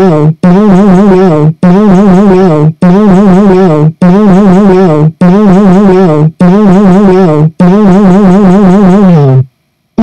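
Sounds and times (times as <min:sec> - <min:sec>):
synthesizer note with vibrato: 0:00.0 - 0:09.5.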